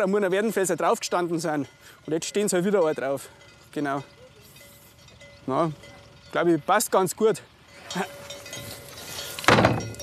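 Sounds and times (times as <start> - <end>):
trailer ramp slamming shut: 9.4 - 10.0.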